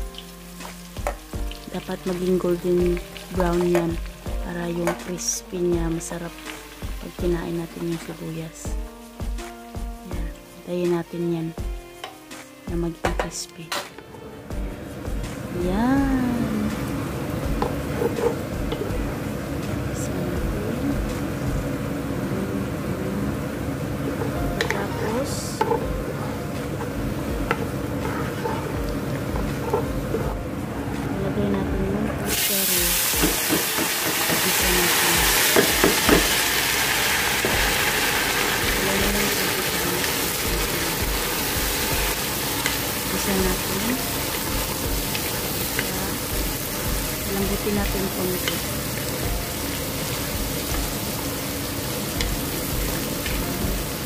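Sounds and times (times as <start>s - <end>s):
onions frying in oil: 0.0s - 13.4s, 14.4s - 54.0s
wooden spatula stirring: 26.7s - 30.4s
loud hissing sizzle: 32.3s - 54.0s.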